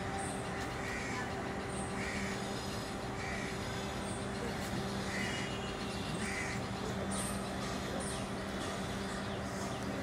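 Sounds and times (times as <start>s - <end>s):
bird calling: 0.0s - 10.0s
steady low hum: 0.0s - 10.0s.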